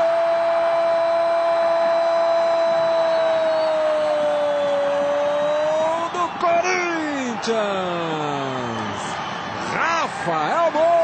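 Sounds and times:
commentator talking excitedly: 0:05.7 - 0:09.1, 0:09.7 - 0:11.0.

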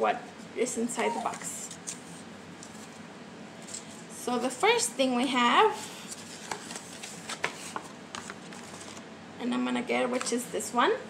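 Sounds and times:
packaging rustling: 0:06.1 - 0:09.0.

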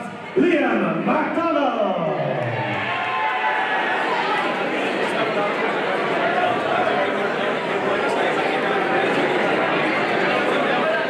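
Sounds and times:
crowd cheering and clapping: 0:02.3 - 0:10.8.

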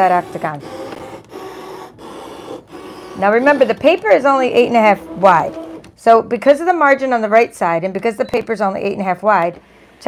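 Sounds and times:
cutting machine whirring: 0:00.0 - 0:06.0.

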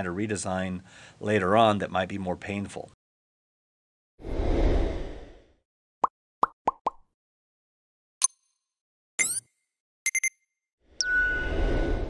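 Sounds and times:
low whoosh: 0:04.2 - 0:05.6, 0:11.2 - 0:12.0.

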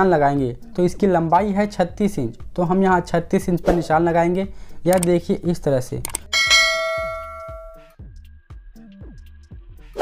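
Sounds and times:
bright bell ding: 0:06.3 - 0:07.9.

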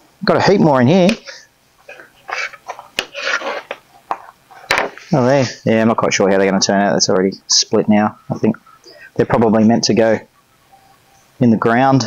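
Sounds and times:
scratchy tearing of grow cubes: 0:01.9 - 0:03.8.

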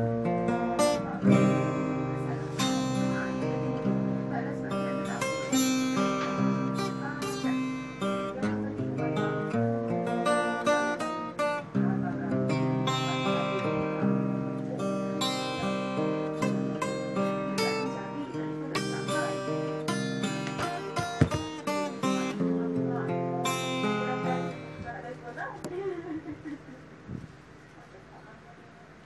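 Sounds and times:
acoustic guitar strumming chords: 0:00.0 - 0:27.6.

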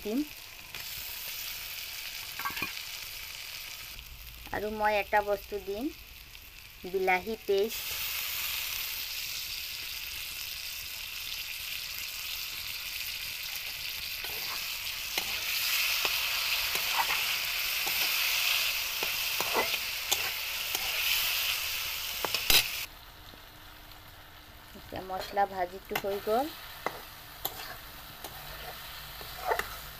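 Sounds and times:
food sizzling in hot oil: 0:00.0 - 0:29.9
spatula scraping and knocking pan: 0:19.0 - 0:21.0, 0:25.2 - 0:29.9.

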